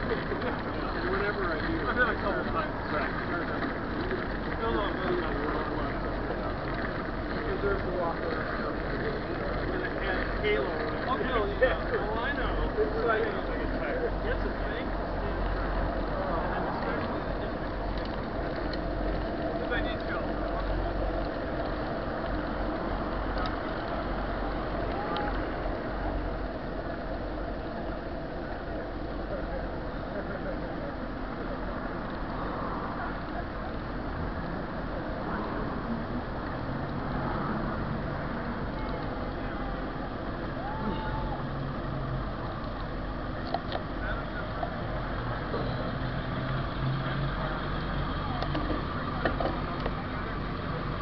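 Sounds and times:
faint voices: 0.0 - 51.0
low vehicle hum: 0.0 - 51.0
road noise rumble: 0.0 - 51.0.

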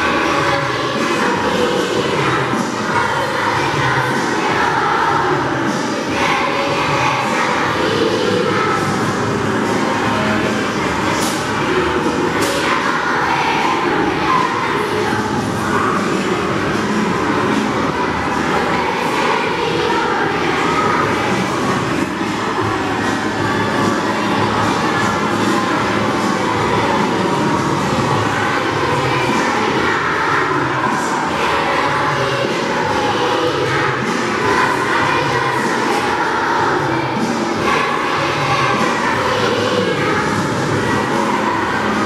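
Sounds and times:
children singing a carol: 0.0 - 42.0.

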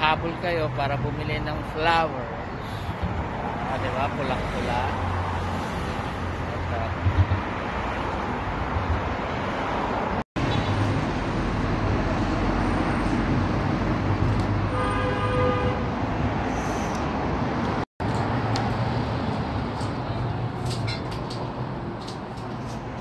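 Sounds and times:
street traffic hum: 0.0 - 23.0
car horn: 14.7 - 15.9.

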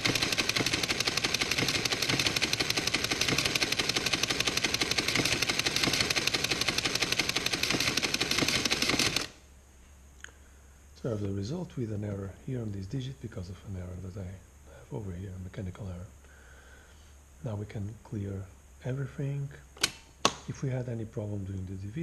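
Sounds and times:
mechanical calculator clatter: 0.0 - 9.4.

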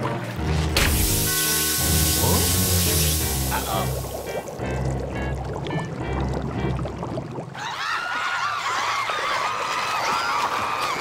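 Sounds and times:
background music: 0.0 - 7.5.

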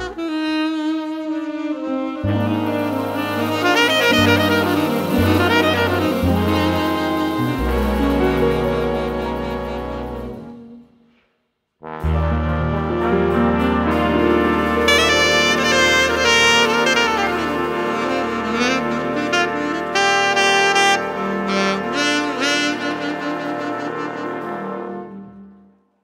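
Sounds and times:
big band brass and saxophones: 0.0 - 11.2, 11.8 - 25.8.

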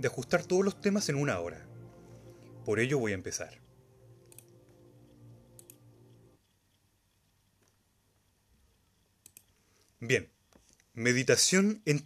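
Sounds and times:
faint clicks: 3.6 - 7.9, 8.6 - 11.0.

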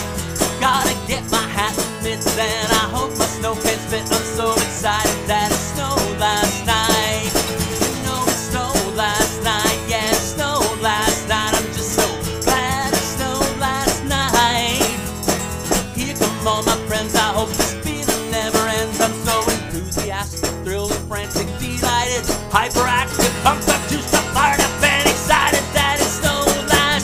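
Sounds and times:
man singing: 0.0 - 15.1, 15.8 - 27.0
guitar strumming: 0.0 - 27.0.

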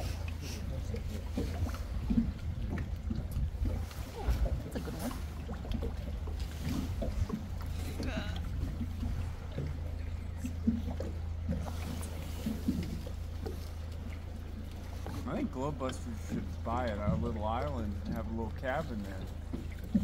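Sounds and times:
boat motor droning: 0.0 - 20.0.

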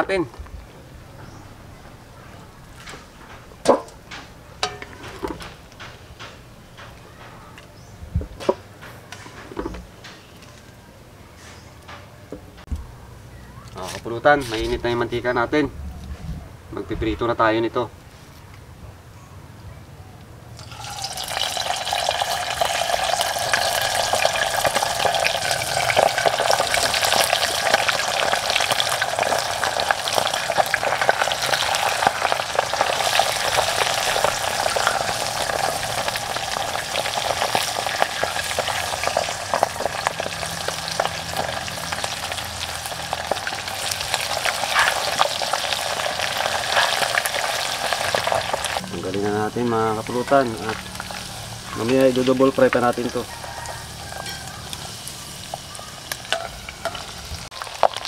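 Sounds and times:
oil sizzling and crackling: 20.6 - 58.0.

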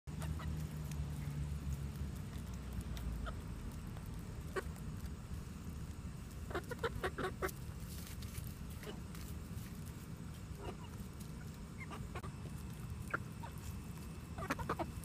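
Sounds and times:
hens clucking: 0.1 - 1.3, 2.3 - 5.2, 6.3 - 7.9, 10.2 - 15.0.

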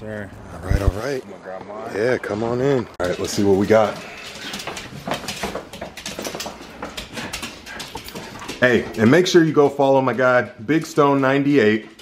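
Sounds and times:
clicks on wooden floor: 3.0 - 9.9
footsteps on wooden floor: 3.0 - 11.1.

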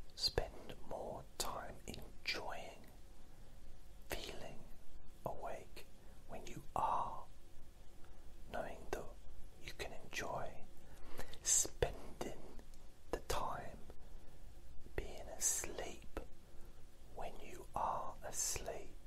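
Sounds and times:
man whispering: 0.1 - 3.0, 4.0 - 7.4, 8.4 - 14.0, 14.8 - 16.4, 17.1 - 19.0.

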